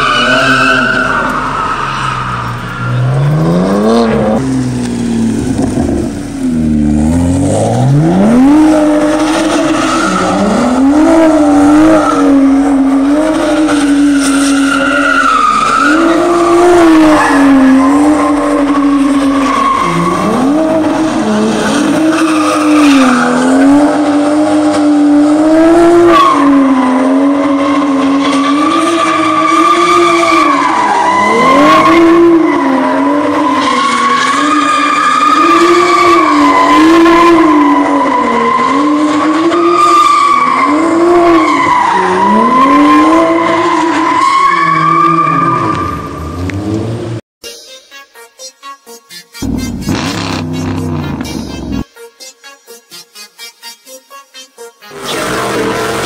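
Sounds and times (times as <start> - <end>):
tires squealing and skidding: 0.0 - 4.5, 7.0 - 47.2, 49.4 - 51.8, 54.9 - 56.0
car engine revving: 0.0 - 14.5, 49.4 - 51.8.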